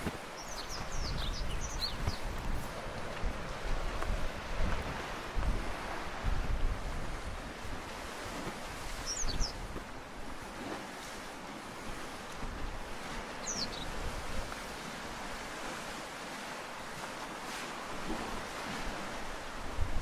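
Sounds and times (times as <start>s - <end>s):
surf on rocky shore: 0.0s - 20.0s
wind gusts on microphone: 0.0s - 20.0s.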